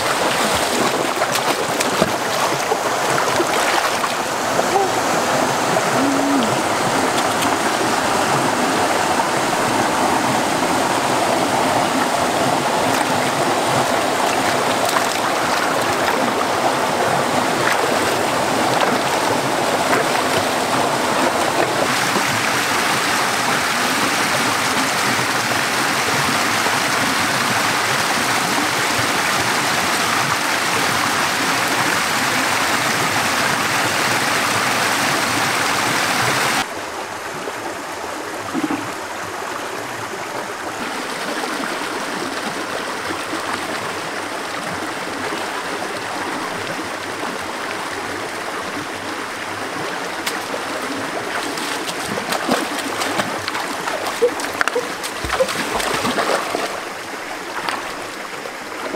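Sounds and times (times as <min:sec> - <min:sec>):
stream water rushing over rocks: 0:00.0 - 0:58.9.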